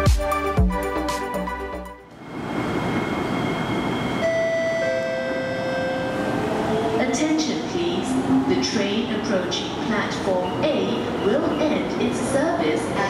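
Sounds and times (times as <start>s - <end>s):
electronic background music: 0.0s - 2.1s
train running noise: 2.1s - 13.0s.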